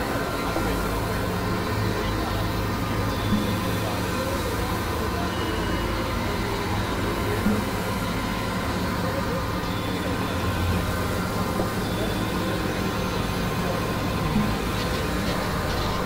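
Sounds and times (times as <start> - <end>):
synthesizer drone music: 0.0 - 16.0.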